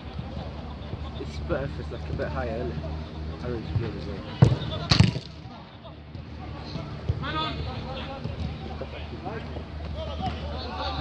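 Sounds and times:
players calling out: 0.0s - 11.0s
football being kicked: 4.4s - 5.4s.

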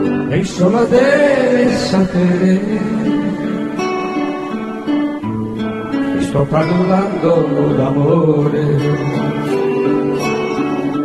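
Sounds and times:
acoustic guitar strummed chords: 0.0s - 11.0s.

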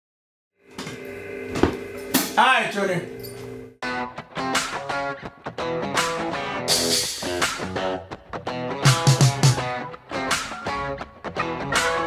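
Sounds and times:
steady ringing tone: 2.8s - 3.8s
drum kit hits: 8.8s - 9.7s.

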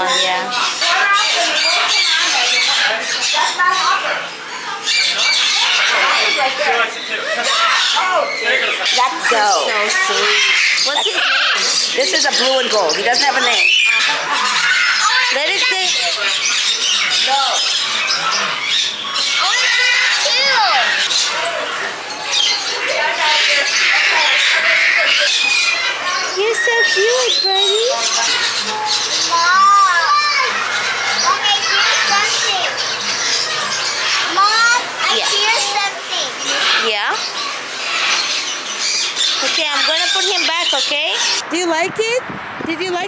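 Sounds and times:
young children's voices: 0.0s - 41.5s
parrots squawking: 0.0s - 42.2s.

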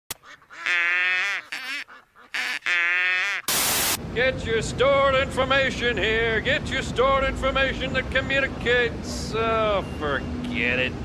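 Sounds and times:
static-like hiss: 3.4s - 4.0s.

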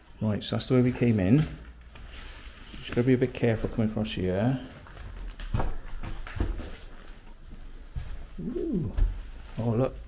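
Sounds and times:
short vocal sound: 8.4s - 9.1s.

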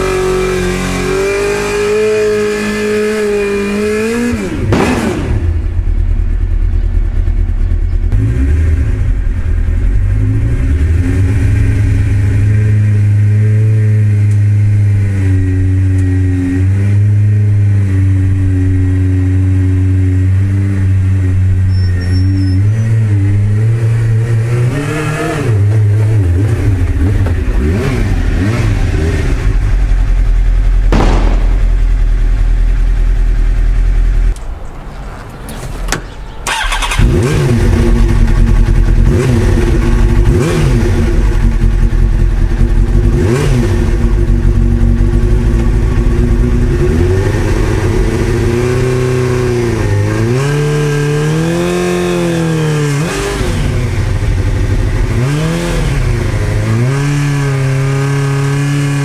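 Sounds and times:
motorcycle engine revving: 0.0s - 34.4s, 36.5s - 59.0s.

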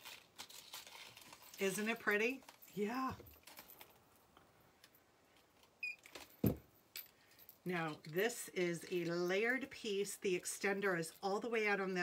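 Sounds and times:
sharp thump: 6.4s - 6.6s.

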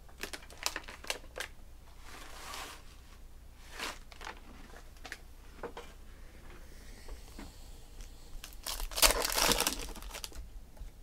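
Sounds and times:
cards and foil wrappers crinkling: 0.2s - 1.6s, 8.4s - 10.4s.

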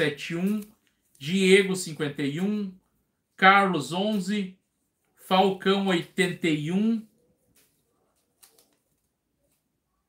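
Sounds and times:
paper slips rustling: 0.0s - 2.8s.

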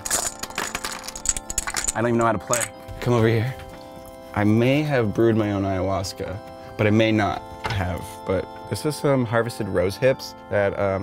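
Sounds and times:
dominoes rattling in a box: 0.0s - 2.7s.

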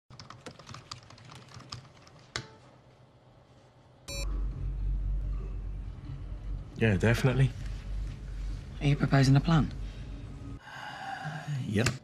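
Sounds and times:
computer keyboard typing: 0.1s - 2.4s.

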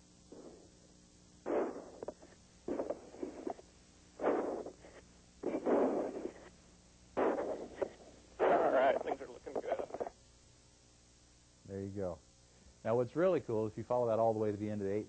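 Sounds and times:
garbled radio bursts: 1.5s - 6.5s, 7.2s - 10.2s.

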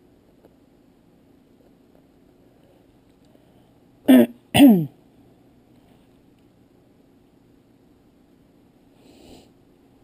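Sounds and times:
person clearing throat: 4.1s - 5.0s.

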